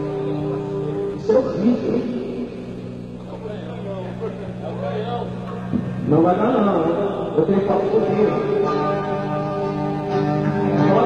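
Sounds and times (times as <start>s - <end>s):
indistinct voices talking: 0.0s - 11.0s
low hum: 0.0s - 11.0s.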